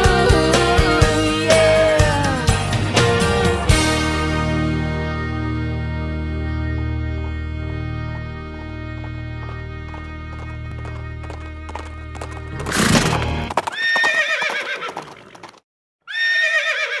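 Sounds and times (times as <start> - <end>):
music with low drone and knocks: 6.0 - 13.5
horse whinnying: 12.6 - 15.3, 16.1 - 17.0.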